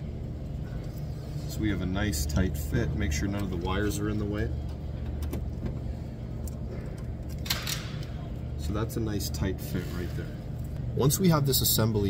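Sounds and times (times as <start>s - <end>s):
steady low background hum: 0.0s - 12.0s.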